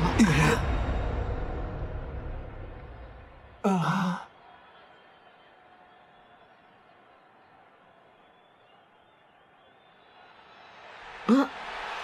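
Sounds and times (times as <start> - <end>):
low rumble: 0.0 - 3.6.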